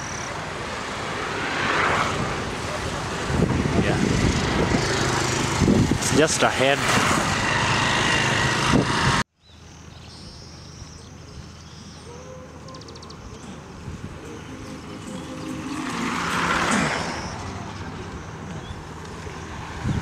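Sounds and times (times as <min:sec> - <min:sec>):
motorcycle engines: 0:00.0 - 0:09.3, 0:10.5 - 0:20.0
rush of road noise: 0:00.0 - 0:20.0
vehicle passing: 0:00.4 - 0:09.2, 0:12.6 - 0:20.0.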